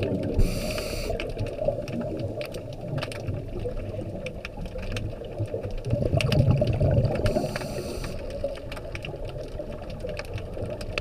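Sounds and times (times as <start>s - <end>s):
rumble of exhaled bubbles: 0.0s - 11.0s
scattered crackling clicks: 0.0s - 11.0s
diver breathing underwater: 0.3s - 1.4s, 7.1s - 8.4s
regulator hiss: 0.4s - 1.3s, 7.3s - 8.3s.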